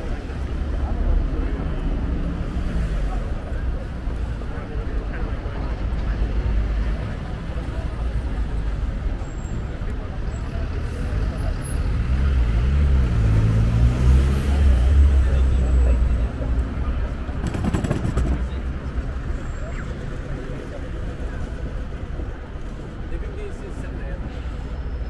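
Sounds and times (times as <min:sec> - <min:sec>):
people talking: 0:00.0 - 0:12.8, 0:14.1 - 0:24.8
heavy vehicle engine: 0:00.0 - 0:25.0
street traffic: 0:00.0 - 0:25.0.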